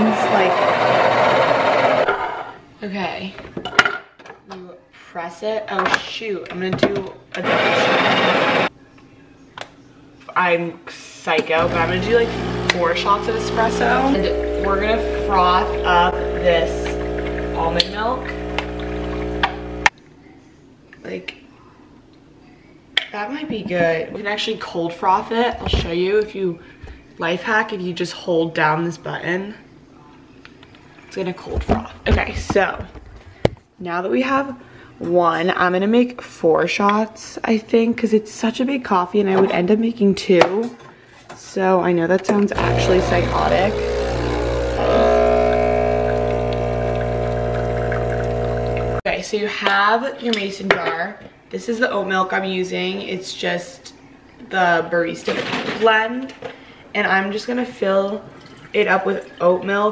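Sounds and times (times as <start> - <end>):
espresso machine pump humming: 11.6 - 19.9, 42.6 - 49.0.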